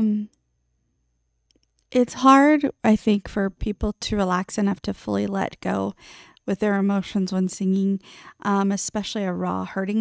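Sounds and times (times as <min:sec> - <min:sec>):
woman talking: 0:00.0 - 0:00.3, 0:01.9 - 0:10.0
faint mouse clicks: 0:01.4 - 0:01.9.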